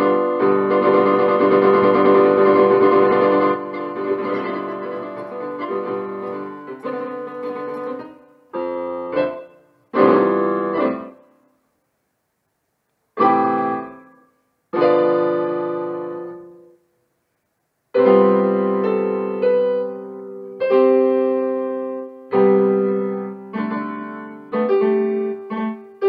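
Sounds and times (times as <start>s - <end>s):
electric piano chords: 0.0s - 11.4s, 13.2s - 16.8s, 17.9s - 26.0s.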